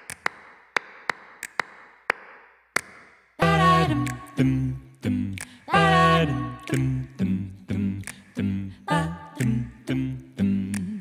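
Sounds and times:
sharp echoing clicks: 0.0s - 7.3s, 8.0s - 8.5s.

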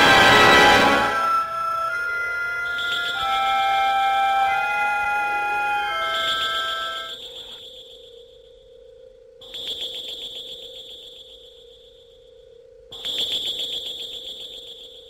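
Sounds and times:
pulsing high-pitched electronic tone: 0.0s - 7.7s.

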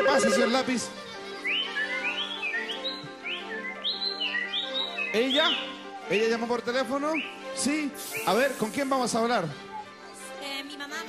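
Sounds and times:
whistle-like rising chirps: 0.0s - 2.8s
background music: 0.0s - 11.0s.

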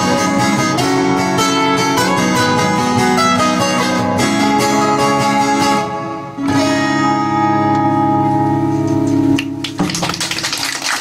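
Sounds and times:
strummed acoustic guitar chords: 0.0s - 10.1s
picked lead guitar line: 0.0s - 10.6s.

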